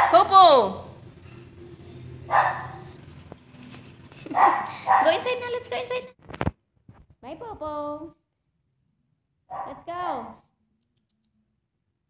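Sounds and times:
puppy barking: 0.0s - 0.3s, 2.3s - 3.0s, 4.3s - 5.3s, 9.5s - 9.8s.

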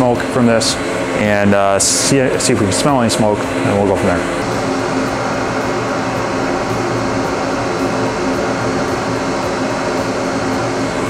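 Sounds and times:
exhaust fans whirring: 0.0s - 11.0s.

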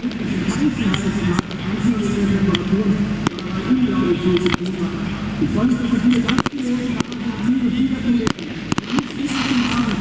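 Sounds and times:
fireworks bangs: 0.0s - 1.9s, 3.2s - 3.8s, 6.1s - 7.4s, 8.2s - 10.0s.

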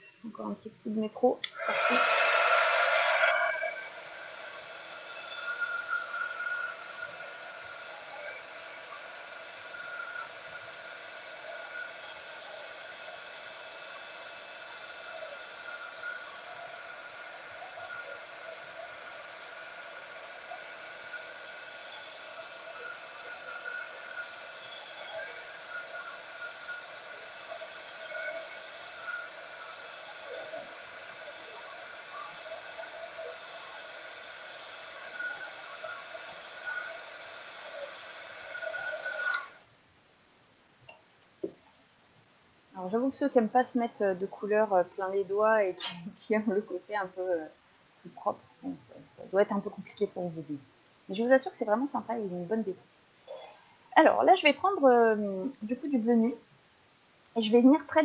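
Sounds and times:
heat tool fan hiss and whine: 0.0s - 58.0s.

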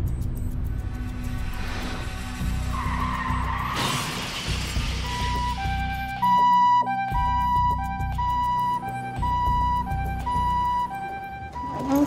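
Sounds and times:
dramatic music: 0.0s - 12.0s
tyres skidding and screeching: 0.8s - 6.2s, 10.9s - 12.0s.

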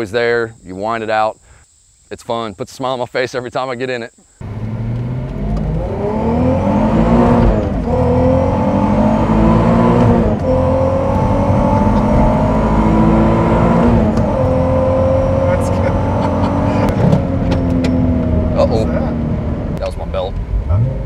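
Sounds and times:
car engine accelerating hard: 4.4s - 21.0s.

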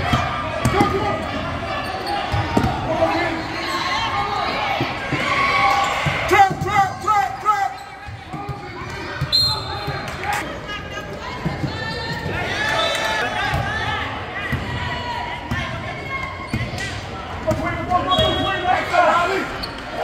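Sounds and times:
players and spectators shouting: 0.0s - 20.0s.

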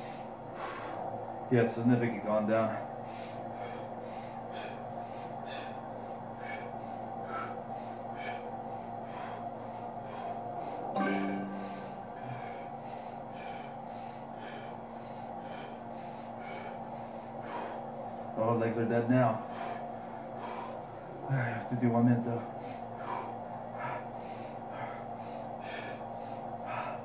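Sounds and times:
man breathing hard through nose: 0.0s - 1.3s, 2.9s - 18.4s, 19.2s - 21.8s, 22.4s - 27.0s
steady hum: 0.0s - 27.0s.

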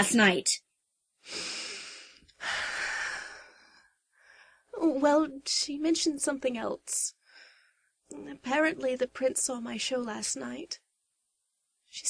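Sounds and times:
woman breathing heavily: 1.2s - 4.7s.

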